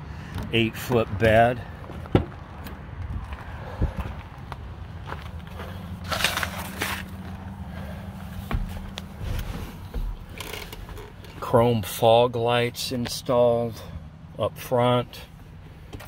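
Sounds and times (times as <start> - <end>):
thumps: 8.4 - 11.3.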